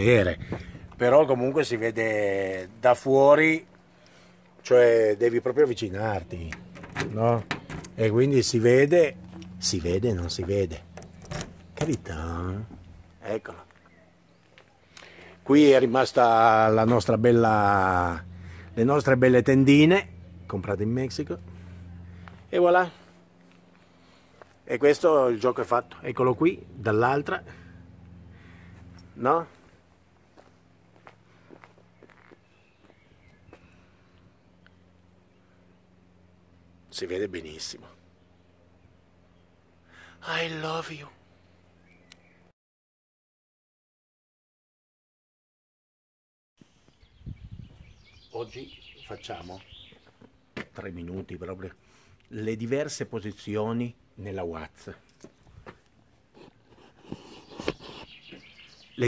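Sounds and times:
low steady hum: 0.0 - 42.5
footsteps on gravel: 21.4 - 24.6, 28.7 - 33.9.

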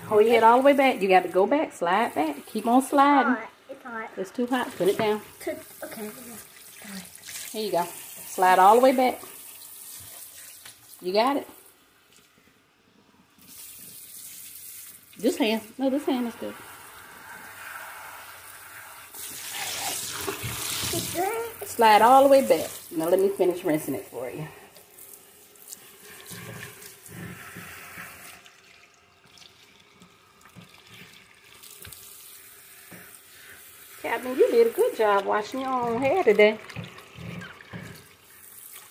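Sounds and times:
water spraying into basin: 0.0 - 3.3, 4.3 - 12.3, 13.4 - 38.9.

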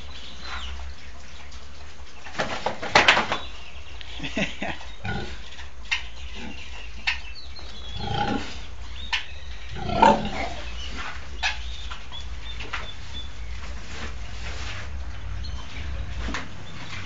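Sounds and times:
pig grunting: 5.0 - 5.5, 7.9 - 8.8, 9.7 - 10.8
piglets squeaking: 6.0 - 13.3.

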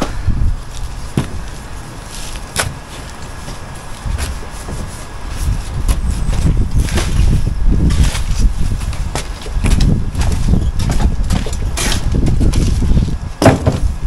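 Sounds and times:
low rumble on microphone: 0.0 - 14.0.

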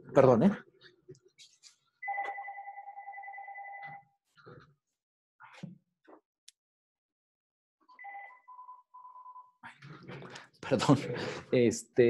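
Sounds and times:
telephone ringing: 2.0 - 4.1, 7.9 - 9.6.

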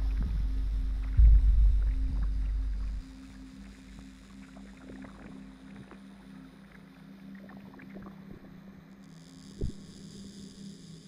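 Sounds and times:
low electronic drone: 0.0 - 11.0.

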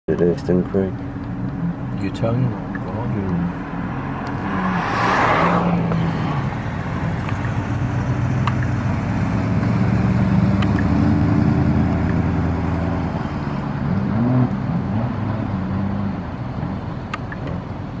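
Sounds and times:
car engine drone: 0.1 - 18.0
cars driving past: 0.2 - 18.0.

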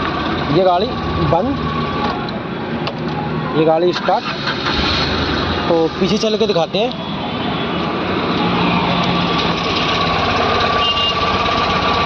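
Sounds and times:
small car engine idling: 9.2 - 12.0.

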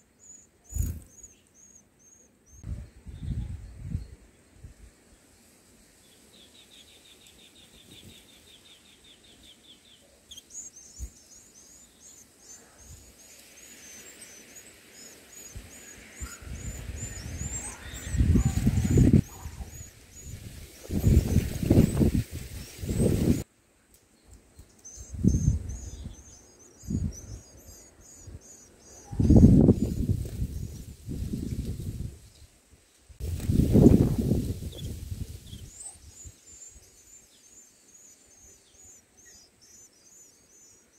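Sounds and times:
nestlings chirping: 0.1 - 2.6, 6.4 - 23.4, 24.5 - 32.0, 33.2 - 40.9.

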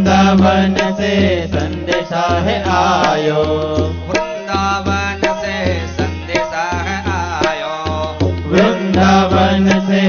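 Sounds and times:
man singing devotional song: 0.0 - 10.0
steady drum beat: 0.0 - 10.0.

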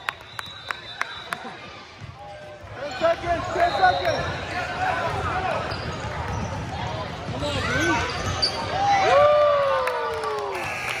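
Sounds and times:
sneakers squeaking on gym floor: 2.0 - 9.0.

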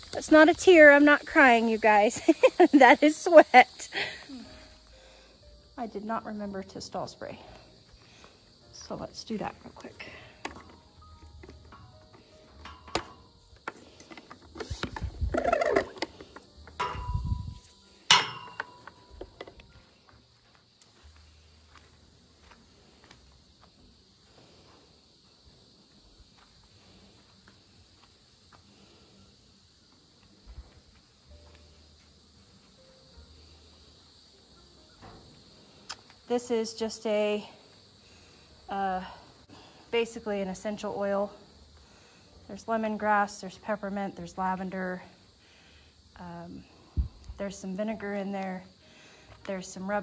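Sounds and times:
crickets chirring: 0.0 - 50.0.

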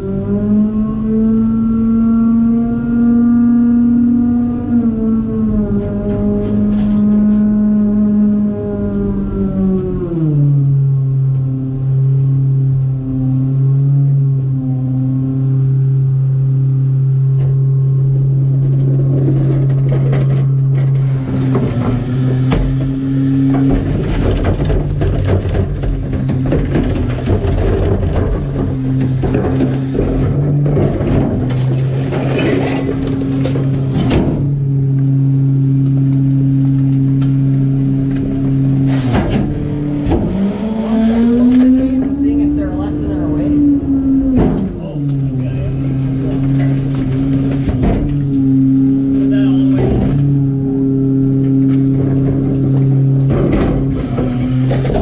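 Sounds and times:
garbage truck engine and hydraulics: 0.0 - 55.0
trash banging and clattering: 18.7 - 35.1, 44.0 - 50.5, 51.3 - 55.0.

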